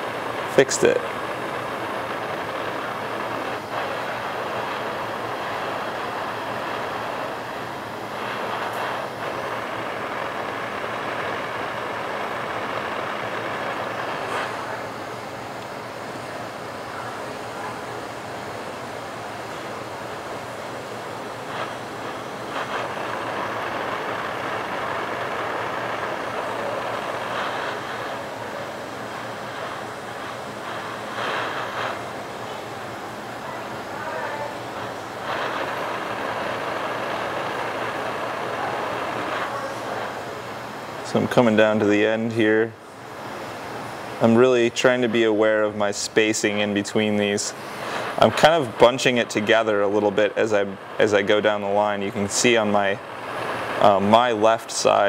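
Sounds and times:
torch burning with rushing hiss: 0.0s - 55.0s.

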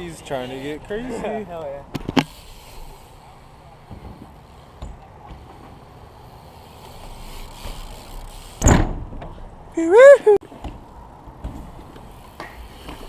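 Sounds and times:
bike tyres rolling on concrete: 0.0s - 13.0s
loud thump: 8.6s - 9.3s.

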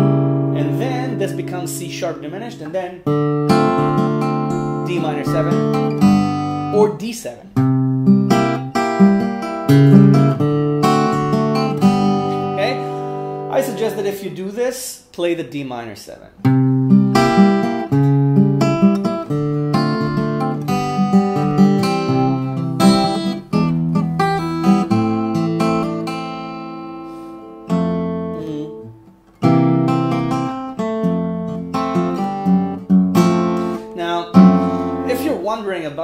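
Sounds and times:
acoustic guitar fingerstyle blues: 0.0s - 14.4s, 16.4s - 35.7s.

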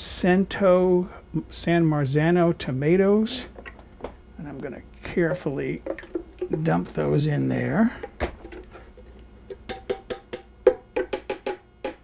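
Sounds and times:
metal can knocking on jar rim: 5.3s - 6.7s, 9.5s - 12.0s.

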